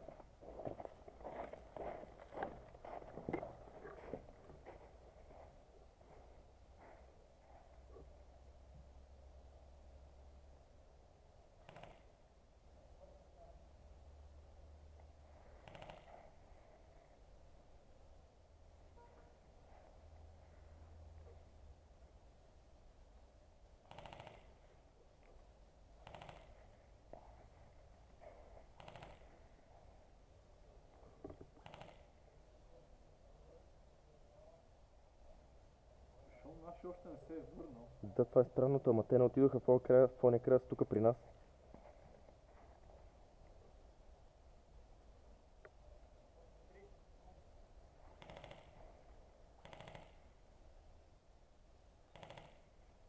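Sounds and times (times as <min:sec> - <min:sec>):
faint bursts of rapid clicking: 0:11.5 - 0:12.3, 0:23.8 - 0:24.7.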